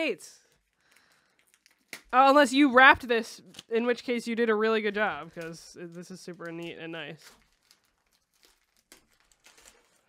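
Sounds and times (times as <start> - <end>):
wrapping paper crinkling: 0.4 - 10.0.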